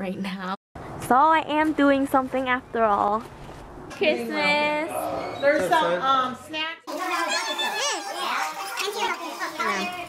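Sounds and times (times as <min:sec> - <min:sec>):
children chattering: 0:06.9 - 0:10.0.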